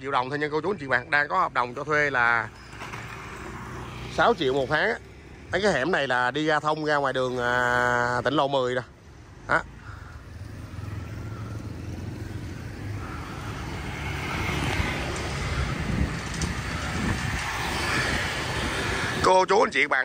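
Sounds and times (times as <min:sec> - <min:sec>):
motor scooter traffic: 0:00.0 - 0:20.0.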